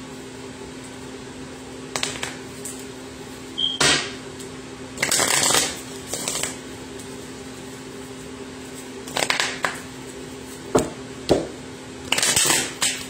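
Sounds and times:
cards being shuffled by hand: 0:05.0 - 0:07.2, 0:08.0 - 0:10.7.

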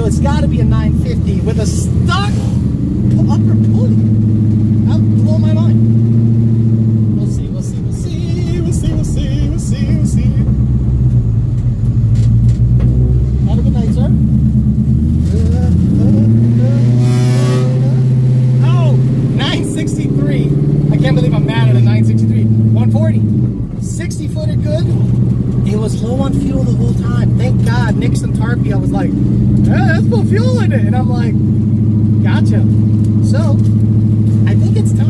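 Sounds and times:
car engine running from inside cabin: 0:00.0 - 0:35.0.

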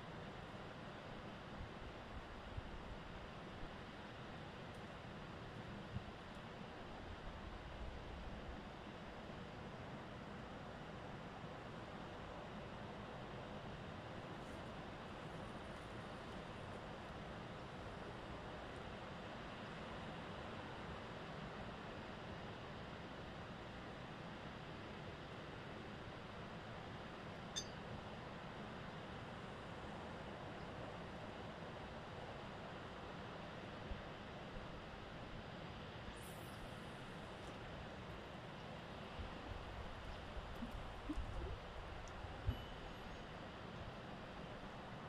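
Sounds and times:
faint outdoor hiss: 0:00.0 - 0:45.0.

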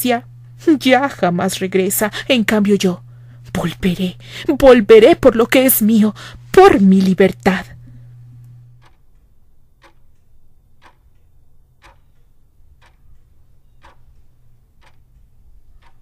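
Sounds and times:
low steady hum: 0:00.0 - 0:16.0
clock ticking faintly: 0:08.5 - 0:16.0.

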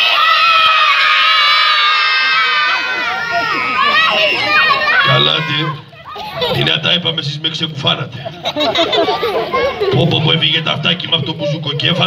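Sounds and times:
crowd of children shouting: 0:00.0 - 0:06.7.

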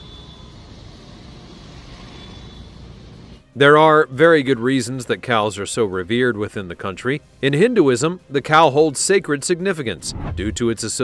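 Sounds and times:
street traffic noise: 0:00.0 - 0:03.4.

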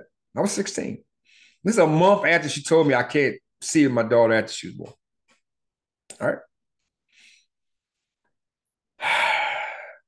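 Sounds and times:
man sighing: 0:09.0 - 0:10.0.

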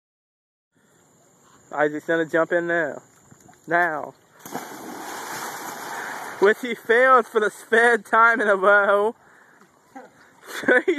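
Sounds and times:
splash into pool: 0:04.4 - 0:06.8
water churning and spraying: 0:04.4 - 0:06.8.

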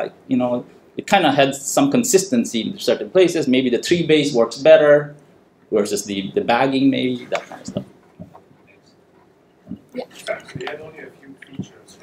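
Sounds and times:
person speaking: 0:04.0 - 0:09.0, 0:09.7 - 0:12.0.

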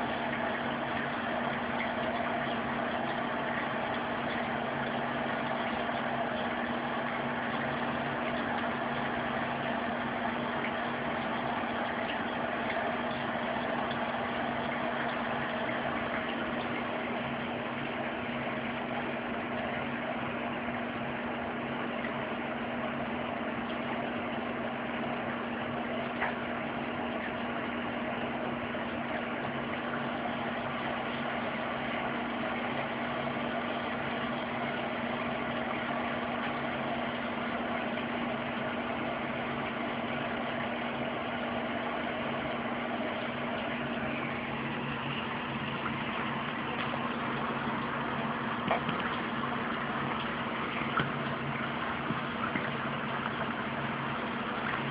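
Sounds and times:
machine hum: 0:00.0 - 0:54.9.

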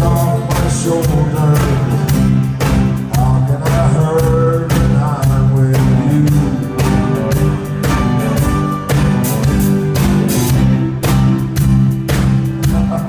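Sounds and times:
person singing: 0:00.0 - 0:02.4, 0:03.0 - 0:08.6, 0:12.4 - 0:13.0
electric guitar: 0:00.0 - 0:13.0
keyboard: 0:00.0 - 0:13.0
strummed acoustic guitars: 0:00.0 - 0:13.0.

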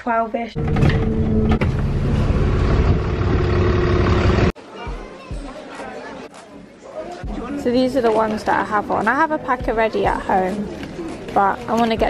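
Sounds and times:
bus engine idling: 0:00.8 - 0:04.5.

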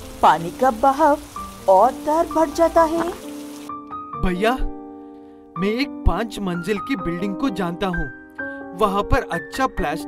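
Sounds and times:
rain: 0:00.0 - 0:03.7
background music: 0:00.0 - 0:10.0
voice: 0:00.2 - 0:03.2.

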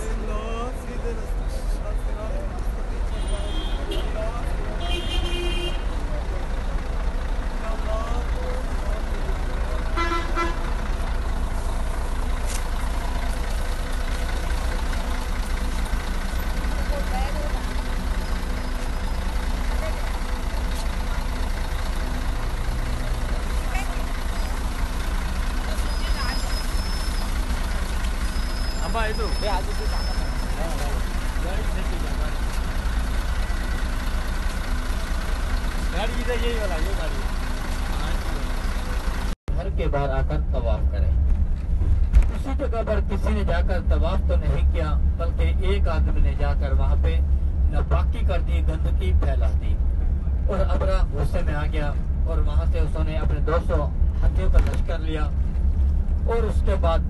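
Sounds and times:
people's voices: 0:00.0 - 0:41.2, 0:42.2 - 0:55.4
bus engine idling: 0:00.0 - 0:57.0.

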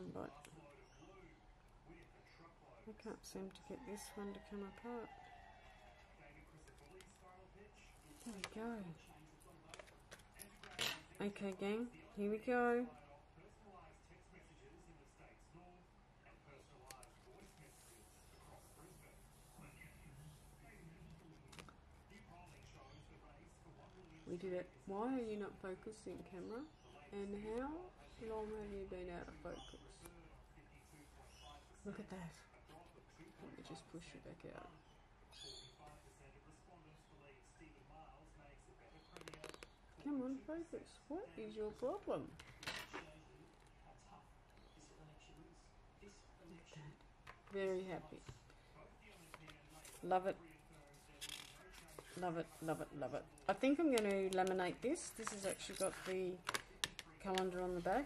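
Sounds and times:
soft scrape on paper: 0:17.2 - 0:21.6.

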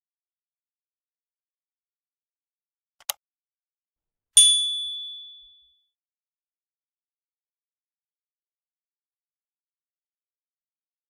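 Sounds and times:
short click: 0:03.0 - 0:03.2
bright bell-like ding: 0:04.4 - 0:05.7.

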